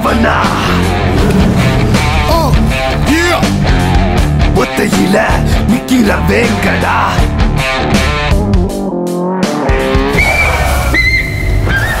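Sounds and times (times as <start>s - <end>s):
high whistle-like melody: 10.0s - 12.0s.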